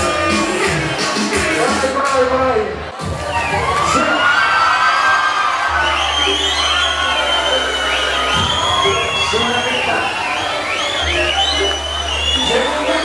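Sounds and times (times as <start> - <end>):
crowd cheering: 0.0 - 13.0.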